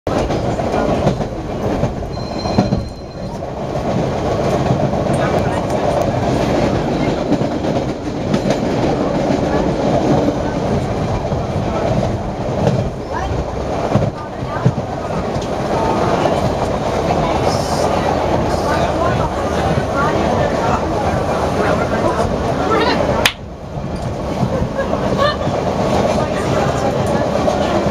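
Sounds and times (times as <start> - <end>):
rumble of train wheels on rails: 0.1 - 27.9.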